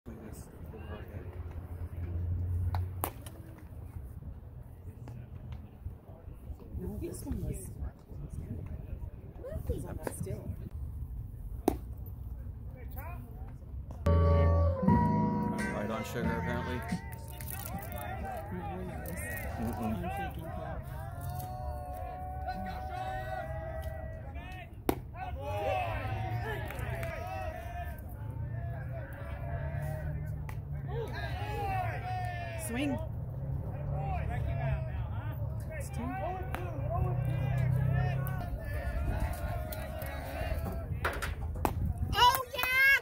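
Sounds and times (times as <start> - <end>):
spectators chatting: 14.1 - 43.0.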